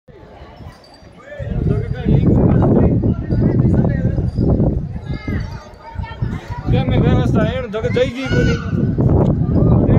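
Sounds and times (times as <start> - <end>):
people talking: 0.2 - 9.9
low rumbling buffeting noise: 1.4 - 9.9.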